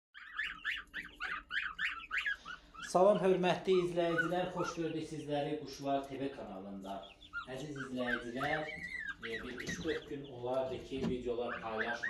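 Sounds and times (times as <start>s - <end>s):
chicks peeping: 0.2s - 12.0s.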